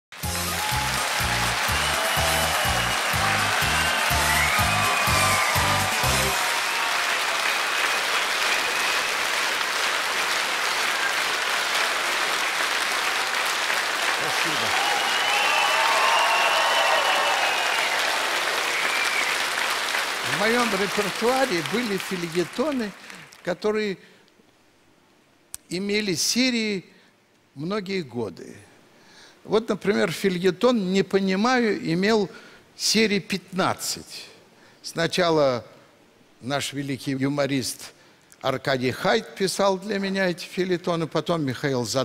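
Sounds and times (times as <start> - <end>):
upbeat entrance music: 0.1 - 6.6
audience applauding: 0.1 - 23.5.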